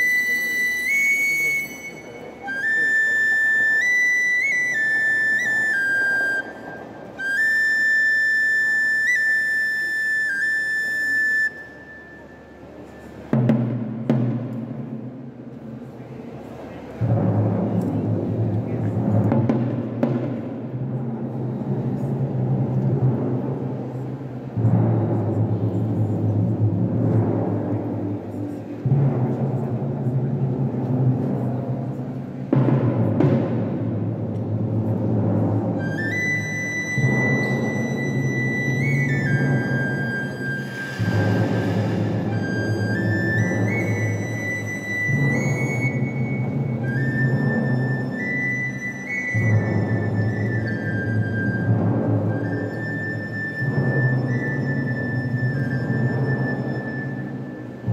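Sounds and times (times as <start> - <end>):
drum strokes: 12.8 - 16.0, 16.8 - 57.9.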